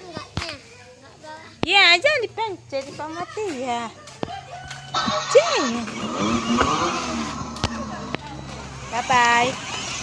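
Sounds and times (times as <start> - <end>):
toy car electric motor whining: 4.9 - 10.0.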